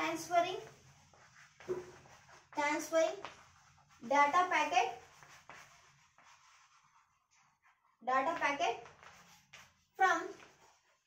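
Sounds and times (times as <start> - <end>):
chalk scratching on blackboard: 0.0 - 11.0.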